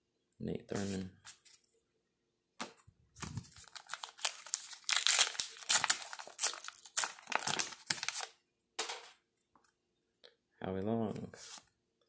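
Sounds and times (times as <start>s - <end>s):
wrapper being torn and crinkled: 3.2s - 8.3s.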